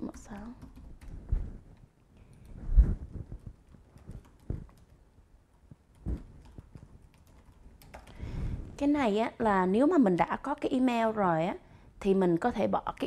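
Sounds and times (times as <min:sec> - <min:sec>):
keyboard typing clicks: 0:00.0 - 0:01.2, 0:03.4 - 0:08.2.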